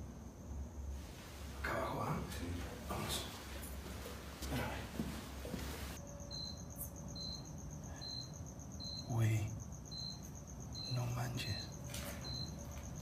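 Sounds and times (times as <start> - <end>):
cricket chirping: 0.0 - 13.0
high insect trill: 0.0 - 13.0.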